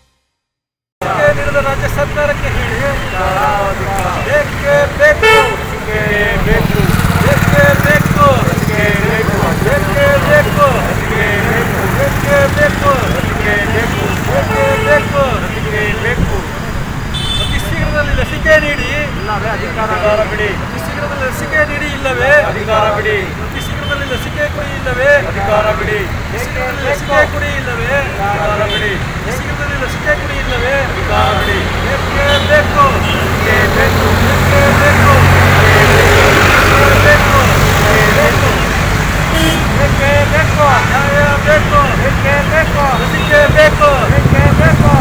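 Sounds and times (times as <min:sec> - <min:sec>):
people's voices: 0:01.0 - 0:45.0
street traffic rumble: 0:01.0 - 0:45.0
vehicle horn tooting: 0:05.0 - 0:05.9, 0:13.9 - 0:16.0, 0:17.1 - 0:19.0, 0:32.2 - 0:34.1, 0:39.3 - 0:39.8.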